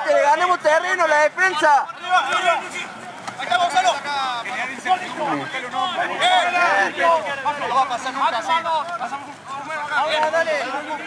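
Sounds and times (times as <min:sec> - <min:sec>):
men shouting and calling: 0:00.0 - 0:11.0.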